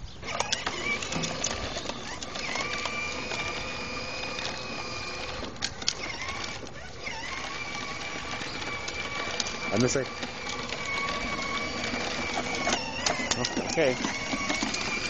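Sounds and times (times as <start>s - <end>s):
sharp clicks: 0.2s - 15.0s
toy electric motor whining: 0.2s - 15.0s.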